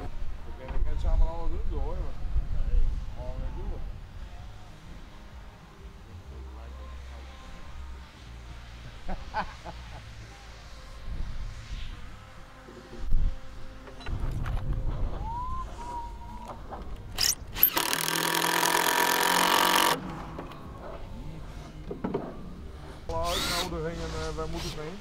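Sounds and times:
cordless drill driving a screw: 17.2s - 20.0s, 23.2s - 23.7s.

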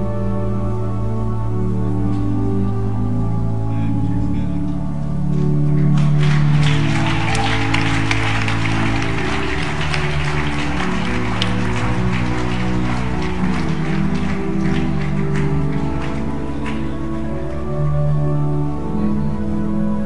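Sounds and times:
instrumental music with held chords: 0.0s - 20.0s
audience clapping: 5.4s - 17.7s.

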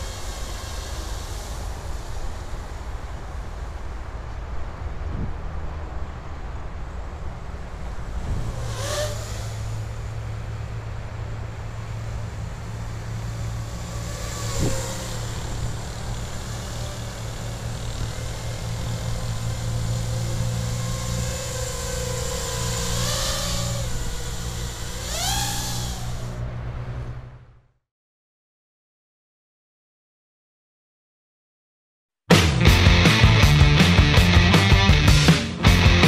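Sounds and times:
quadcopter motors buzzing whine: 0.0s - 27.6s.

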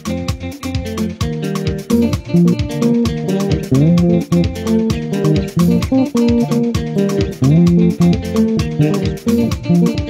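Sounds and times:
backing track with percussive beat: 0.0s - 10.0s
electric guitar melody: 0.0s - 10.0s
bass line: 0.1s - 10.0s.

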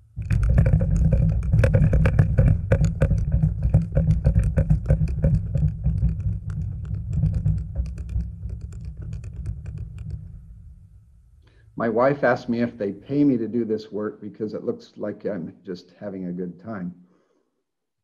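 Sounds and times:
deep rumble: 0.0s - 11.6s.

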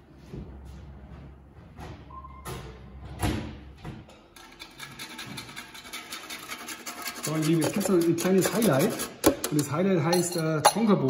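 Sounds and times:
box grater rasping: 4.8s - 9.5s.

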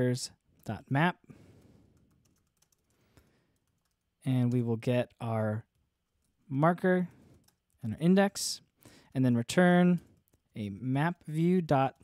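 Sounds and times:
keyboard typing: 1.6s - 6.4s, 7.3s - 7.9s, 9.8s - 12.0s.

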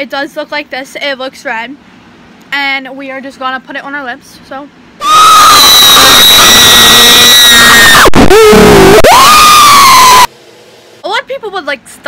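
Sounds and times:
person screaming loudly: 5.0s - 10.3s.

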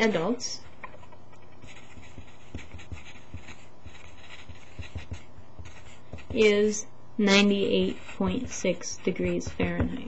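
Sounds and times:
pencil writing on paper: 0.0s - 6.8s, 7.4s - 10.0s
pencil knocking on desk: 1.7s - 6.5s, 9.2s - 10.0s.

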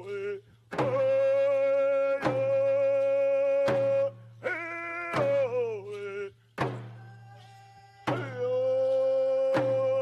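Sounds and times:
frame hand drum beats: 0.7s - 7.2s, 8.0s - 10.0s.

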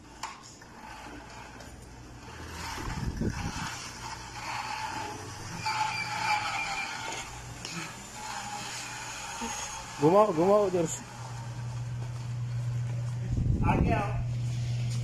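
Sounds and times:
electric motor whine: 0.0s - 15.0s
steady low hum: 0.0s - 15.0s
low rumble: 11.1s - 15.0s.

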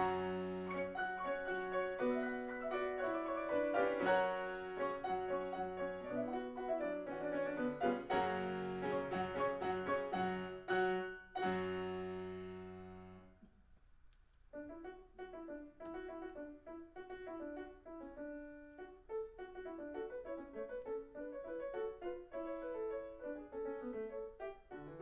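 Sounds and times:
grand piano playing: 0.0s - 13.4s, 14.5s - 25.0s.

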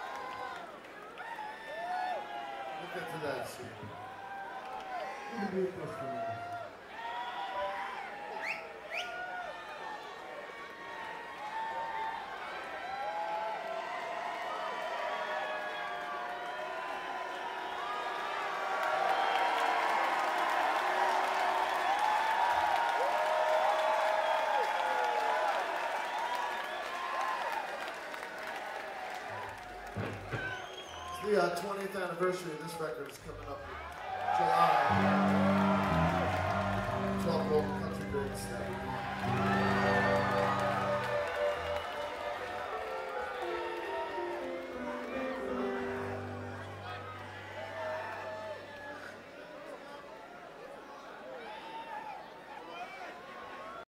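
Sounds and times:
crowd applauding and cheering: 0.0s - 53.8s
crowd shouting: 33.6s - 49.2s
live rock band music: 34.7s - 46.8s.

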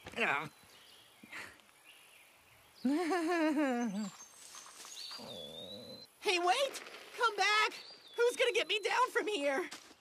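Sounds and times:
faint low growl: 5.1s - 6.1s.

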